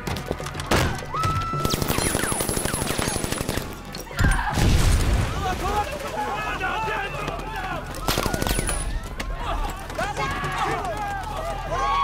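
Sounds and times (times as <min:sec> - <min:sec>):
people screaming and wailing: 0:04.0 - 0:04.7, 0:05.3 - 0:12.0.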